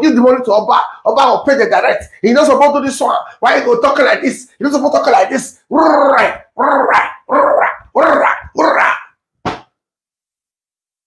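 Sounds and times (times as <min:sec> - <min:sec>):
man shouting calls: 0:05.7 - 0:09.1.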